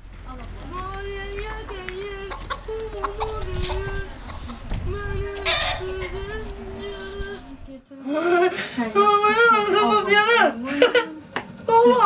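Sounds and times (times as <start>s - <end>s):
chickens clucking: 0.7s - 7.7s.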